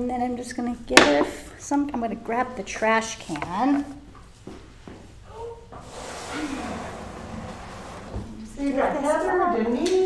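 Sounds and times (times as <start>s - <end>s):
trash can scraping: 5.8s - 8.6s.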